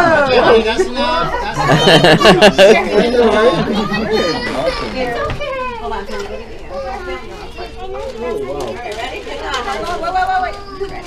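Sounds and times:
adults and children chattering: 0:00.0 - 0:11.0.

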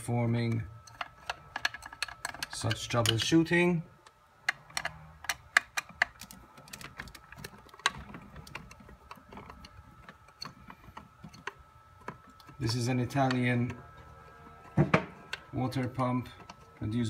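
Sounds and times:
screwdriver clicking on screws: 0:00.8 - 0:03.4, 0:04.0 - 0:13.8.

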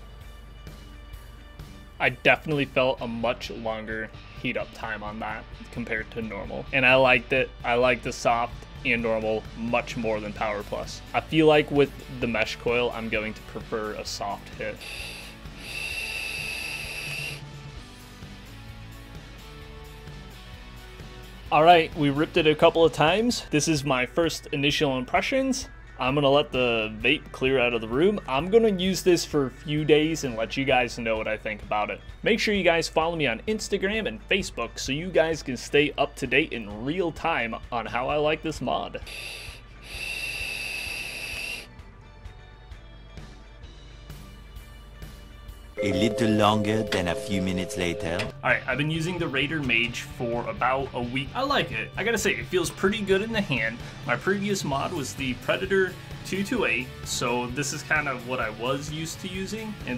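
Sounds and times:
breath out: 0:14.8 - 0:17.4, 0:39.0 - 0:41.7
vape airflow hiss and whistle: 0:14.8 - 0:17.5, 0:39.0 - 0:41.7.

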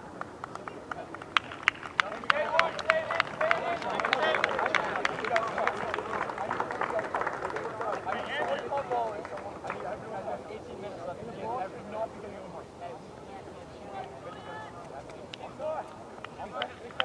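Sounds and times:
players shouting outdoors: 0:02.0 - 0:09.2, 0:09.9 - 0:17.0.

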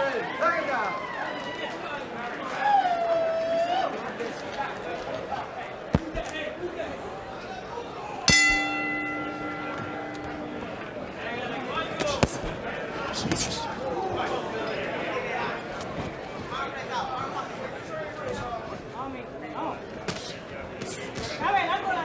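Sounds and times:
arena crowd noise: 0:00.0 - 0:22.0
boxing ring bell: 0:08.3 - 0:11.7.

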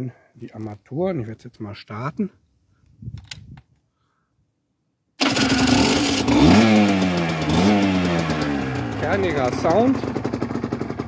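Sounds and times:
two-stroke motorcycle engine revving: 0:05.2 - 0:11.0.

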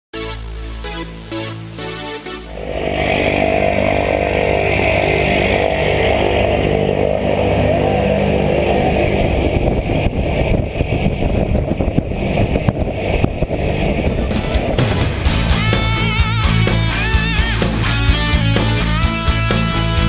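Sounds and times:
plane engine and propeller running: 0:00.7 - 0:20.0.

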